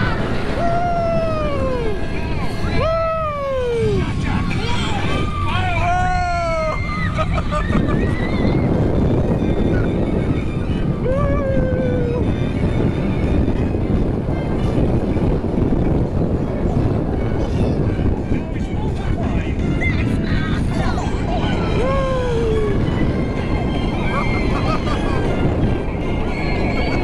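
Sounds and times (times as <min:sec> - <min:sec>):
roller coaster rumbling on track: 0:00.0 - 0:27.0
rushing wind: 0:00.0 - 0:27.0.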